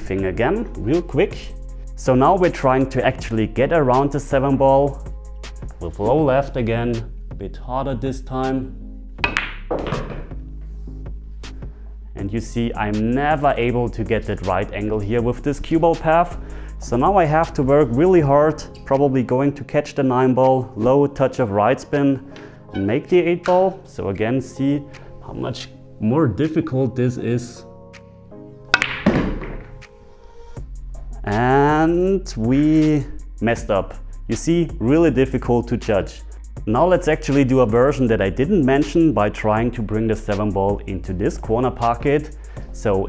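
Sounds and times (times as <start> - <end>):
background music: 0.0 - 43.0
cue tip striking ball: 9.2 - 10.3, 28.7 - 29.9
ball dropping into pocket: 9.2 - 10.4, 28.7 - 29.9
balls rolling and knocking: 9.2 - 10.4, 28.8 - 29.9
billiard balls clicking: 9.2 - 10.4, 28.7 - 29.9.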